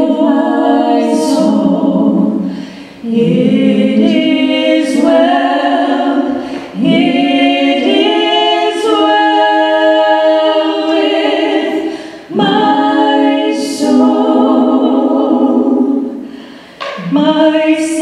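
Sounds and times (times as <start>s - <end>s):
women singing in harmony: 0.0s - 18.0s.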